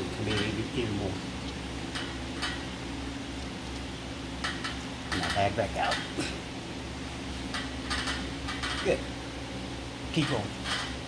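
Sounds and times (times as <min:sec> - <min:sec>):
electric fans humming: 0:00.0 - 0:11.0.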